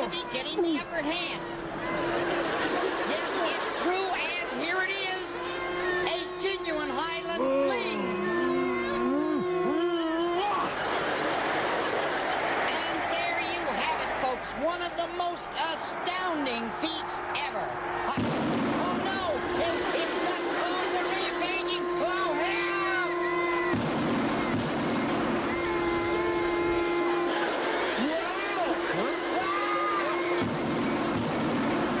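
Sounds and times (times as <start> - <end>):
bagpipes playing: 0.0 - 12.4, 18.8 - 31.2.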